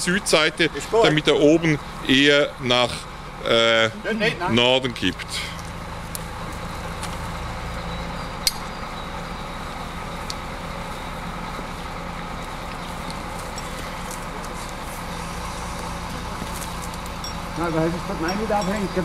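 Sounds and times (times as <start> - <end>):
diesel engine humming: 0.0 - 19.0.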